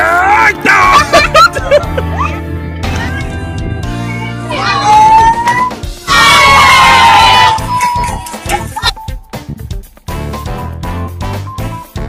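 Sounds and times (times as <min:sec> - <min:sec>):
kids shouting and cheering: 0:00.0 - 0:08.9
music playing: 0:00.0 - 0:12.0
child whooping: 0:04.5 - 0:08.4.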